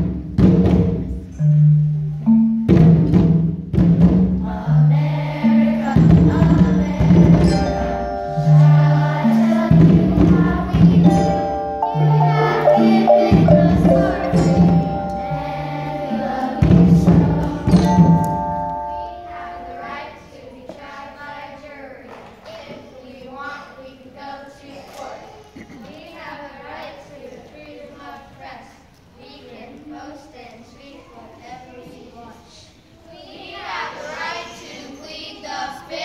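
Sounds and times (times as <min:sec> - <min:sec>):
children playing drums: 0:00.0 - 0:20.1
mallet percussion: 0:00.0 - 0:20.2
children's choir singing: 0:04.1 - 0:28.7, 0:31.8 - 0:36.0.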